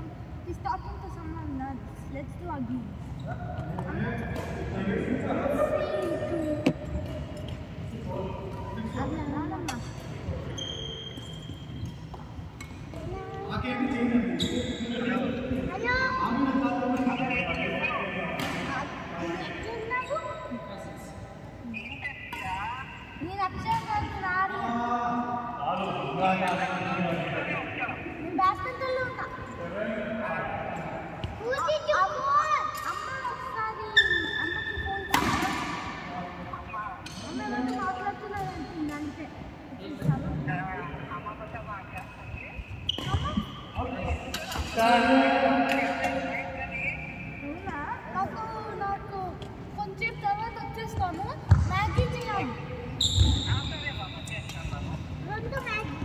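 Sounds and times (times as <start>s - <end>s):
rackets striking shuttlecock: 35.1s - 36.0s.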